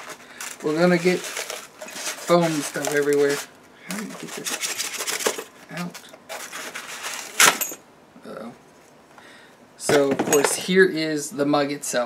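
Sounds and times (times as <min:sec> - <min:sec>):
styrofoam scraping and rustling: 0:00.0 - 0:07.5.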